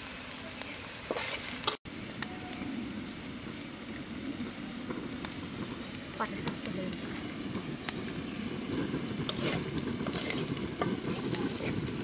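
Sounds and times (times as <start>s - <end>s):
vegetables sizzling in oil: 0.0s - 12.0s
metal spatula scraping a wok: 1.1s - 1.8s, 9.2s - 11.9s.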